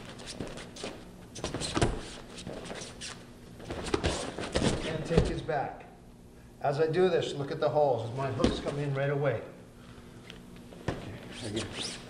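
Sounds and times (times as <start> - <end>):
shoes scuffing on foam mats: 0.0 - 5.4.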